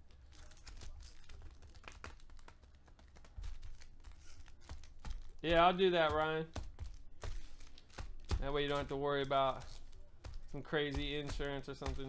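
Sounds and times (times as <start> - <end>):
foil card packs crinkling: 0.0 - 12.0.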